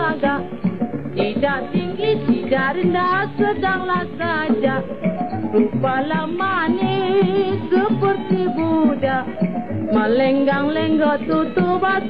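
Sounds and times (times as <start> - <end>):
person singing vibrato melody: 1.2 - 4.9, 5.6 - 12.0.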